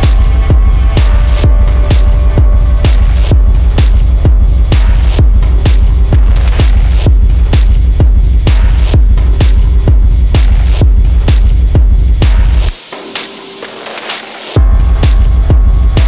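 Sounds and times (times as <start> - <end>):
heavy sub-bass drone: 0.0 - 12.8, 14.6 - 16.0
steady kick drum: 0.0 - 16.0.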